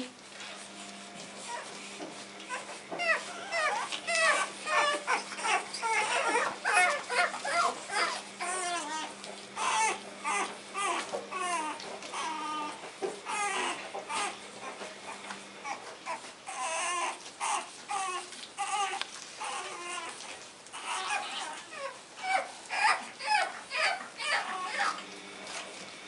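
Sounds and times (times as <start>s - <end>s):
puppies whining and yelping: 1.4s - 25.6s.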